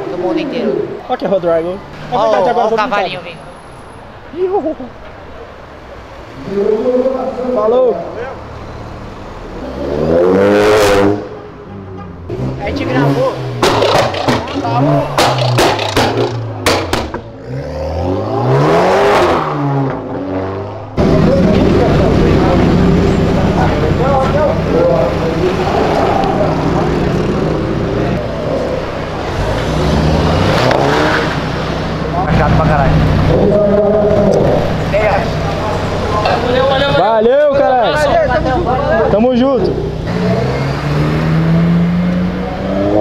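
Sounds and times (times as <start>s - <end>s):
car engine revving: 6.4s - 37.2s, 37.8s - 43.0s
steady engine drone: 20.8s - 43.0s.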